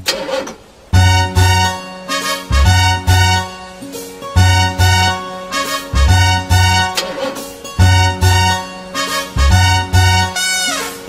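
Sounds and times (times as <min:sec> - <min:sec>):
bouncy children's song music: 0:01.0 - 0:11.0.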